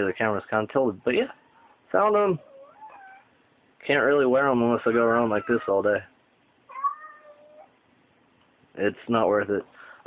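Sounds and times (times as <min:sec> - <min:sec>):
cat meowing: 0:02.4 - 0:03.4, 0:06.7 - 0:07.8.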